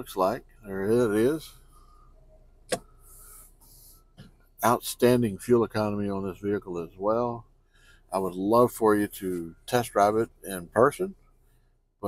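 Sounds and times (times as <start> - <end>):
sharp click: 2.7 - 2.9.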